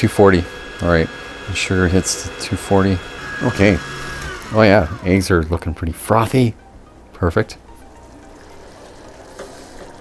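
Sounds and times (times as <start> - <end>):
stand mixer whipping: 0.0 - 5.3.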